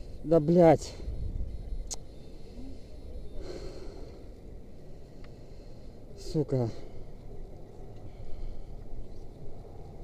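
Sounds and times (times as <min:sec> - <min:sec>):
low wind rumble: 0:00.0 - 0:10.0
man breathing out heavily: 0:02.3 - 0:04.4.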